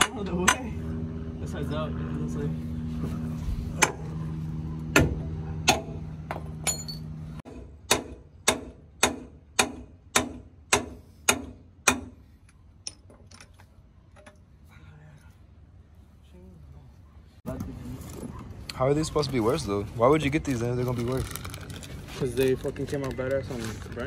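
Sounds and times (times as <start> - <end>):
steady low hum: 0.0 - 13.0
hammer striking steel: 4.9 - 12.2.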